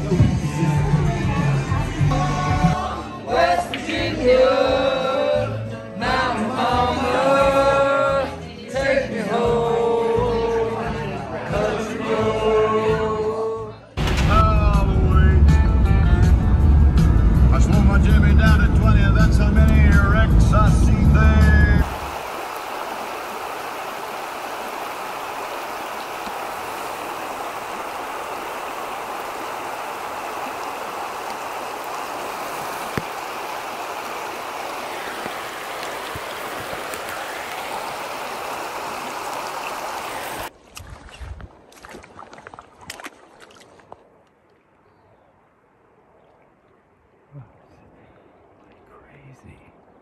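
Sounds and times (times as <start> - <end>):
music with sung vocal and heavy bass: 0.0 - 3.3
river water rushing: 21.8 - 43.9.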